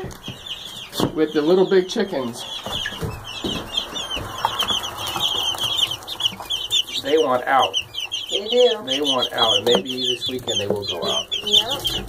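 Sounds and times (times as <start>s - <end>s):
chicks peeping: 0.0s - 12.0s.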